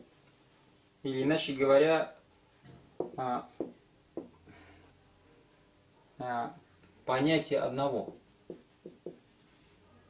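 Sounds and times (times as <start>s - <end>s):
marker writing on whiteboard: 8.0s - 9.8s.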